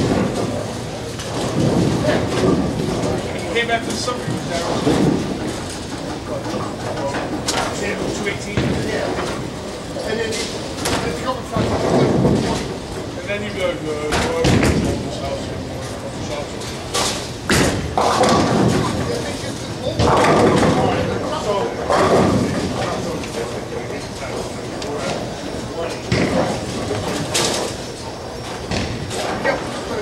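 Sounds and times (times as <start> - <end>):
bowling balls rolling on lanes: 0.0 - 30.0.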